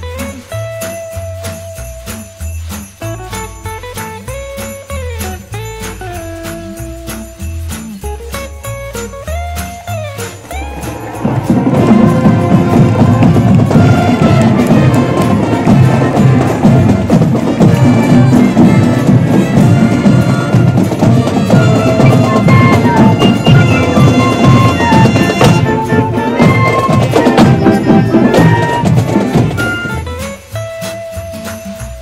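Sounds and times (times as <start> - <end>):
drums beating: 0.0 - 32.0
marching band playing: 0.0 - 32.0.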